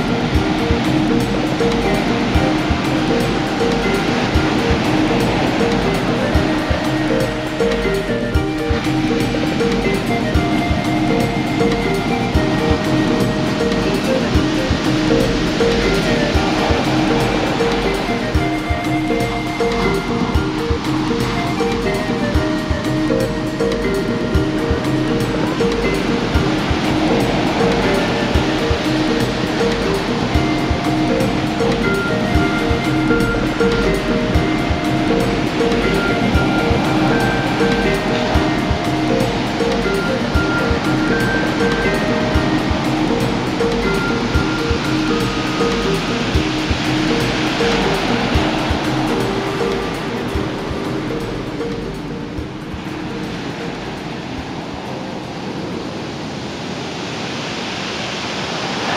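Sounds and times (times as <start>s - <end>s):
ocean surf breaking: 0.0s - 58.9s
soft new age music: 0.0s - 58.9s.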